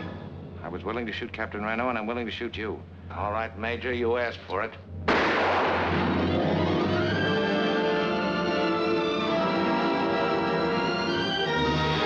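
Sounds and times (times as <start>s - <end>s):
film score music: 0.0s - 12.0s
pistol shot: 5.1s - 6.4s.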